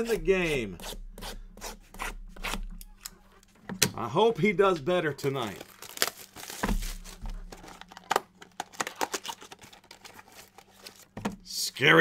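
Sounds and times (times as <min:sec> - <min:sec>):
packaging crinkling and tearing: 0:05.1 - 0:11.2.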